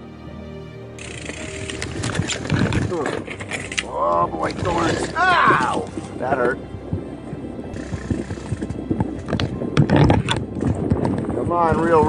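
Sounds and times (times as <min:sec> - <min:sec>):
mountain bike rattling over rough trail: 0:01.0 - 0:05.9.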